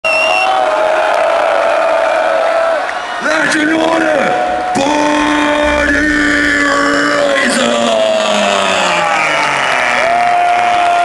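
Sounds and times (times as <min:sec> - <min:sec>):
crowd cheering and whooping: 0:00.1 - 0:06.2, 0:07.2 - 0:11.0.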